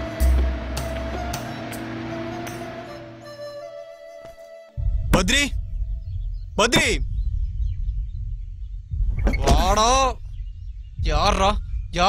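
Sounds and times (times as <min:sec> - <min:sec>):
low steady rumble: 0:00.0 - 0:03.3, 0:04.8 - 0:12.0.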